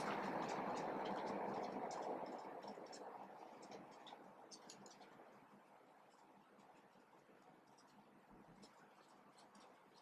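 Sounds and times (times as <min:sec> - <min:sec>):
steady rushing noise: 0:00.0 - 0:06.9.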